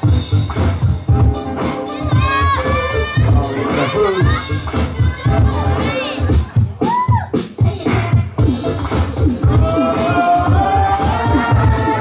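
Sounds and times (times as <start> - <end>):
hip-hop beat: 0.0 - 12.0
children shouting and cheering: 1.8 - 8.0.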